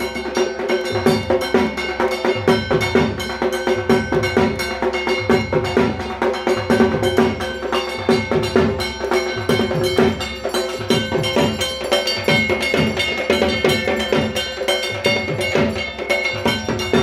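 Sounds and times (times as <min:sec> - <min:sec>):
drums beaten in quick rhythm: 0:00.0 - 0:17.0
metal percussion clanging: 0:00.0 - 0:17.0.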